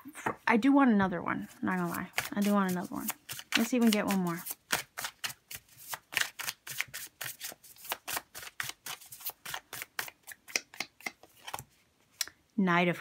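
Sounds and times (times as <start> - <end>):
cards being shuffled: 1.4 - 11.8.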